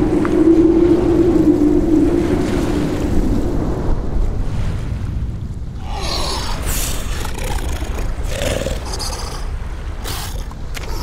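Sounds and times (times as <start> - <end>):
wind: 0.0 - 11.0.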